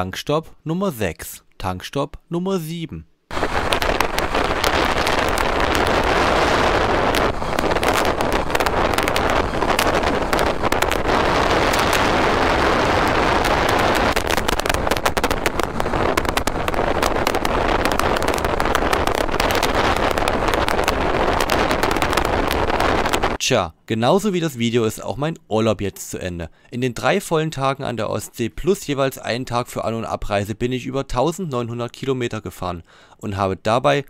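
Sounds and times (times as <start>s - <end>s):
wind roaring over microphone: 3.3s - 23.4s.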